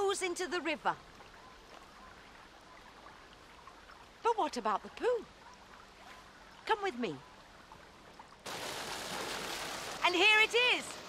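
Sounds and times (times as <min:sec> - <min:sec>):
sludge pouring and splashing: 0:08.5 - 0:10.1.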